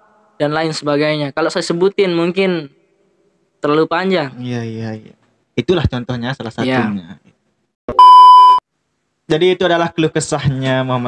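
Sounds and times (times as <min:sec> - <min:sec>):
loud electronic bleep: 0:07.9 - 0:08.6.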